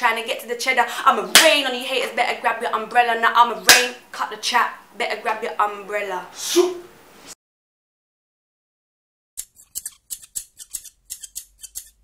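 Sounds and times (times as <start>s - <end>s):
scissors snipping: 9.4s - 12.0s.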